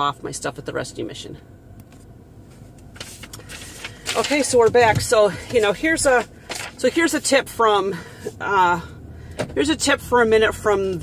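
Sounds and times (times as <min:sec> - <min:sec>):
low car cabin rumble: 0:00.0 - 0:11.0.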